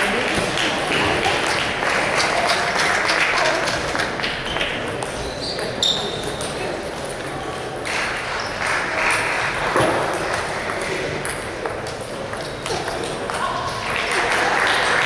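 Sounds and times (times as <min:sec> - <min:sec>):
murmur of voices: 0:00.0 - 0:15.0
table tennis balls bouncing: 0:03.6 - 0:06.6, 0:09.1 - 0:13.5.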